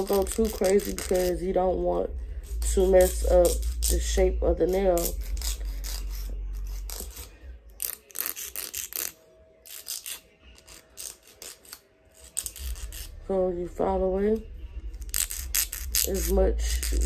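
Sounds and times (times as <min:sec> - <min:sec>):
nail file rasping: 0:00.0 - 0:01.4, 0:02.4 - 0:13.2, 0:15.0 - 0:17.0.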